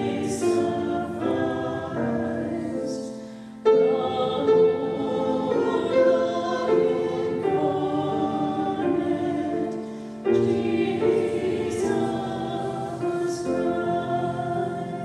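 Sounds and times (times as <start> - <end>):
grand piano accompaniment: 0.0 - 15.0
two women singing a duet: 0.0 - 15.0.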